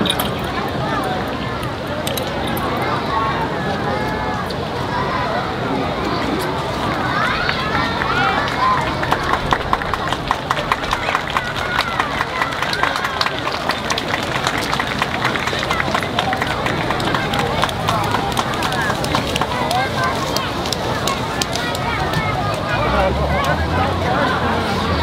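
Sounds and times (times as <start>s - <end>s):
crowd voices calling and shouting: 0.0s - 25.0s
hand clapping: 7.4s - 22.6s.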